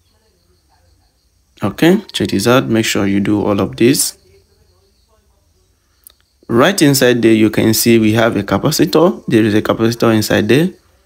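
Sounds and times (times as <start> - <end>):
faint room noise: 0.0 - 11.0
man's voice: 1.6 - 4.2, 6.5 - 10.8.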